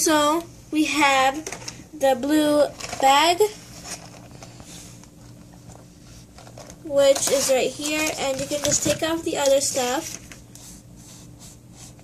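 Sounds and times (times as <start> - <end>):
steady low hum: 0.0 - 12.0
plastic bag crinkling: 2.6 - 5.4, 6.2 - 10.4
person speaking: 6.8 - 10.2.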